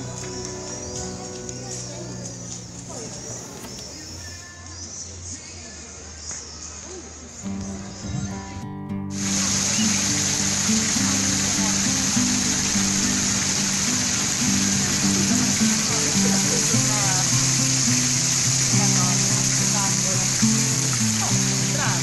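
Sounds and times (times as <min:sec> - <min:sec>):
fountain water splashing into basin: 0:00.0 - 0:04.3, 0:09.1 - 0:22.0
guitar music: 0:00.0 - 0:04.4, 0:07.4 - 0:22.0
faint voices: 0:00.0 - 0:22.0.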